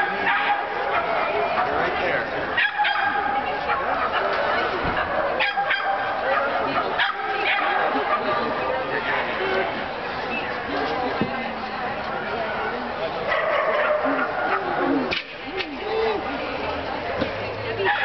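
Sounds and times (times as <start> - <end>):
dog barking: 0.2 - 1.2, 2.6 - 4.4, 5.4 - 8.4, 13.3 - 14.8.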